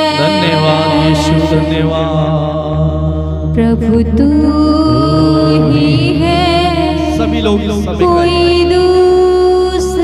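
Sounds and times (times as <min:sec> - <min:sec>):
person singing worship song: 0:00.0 - 0:10.0
sustained instrumental backing: 0:00.0 - 0:10.0.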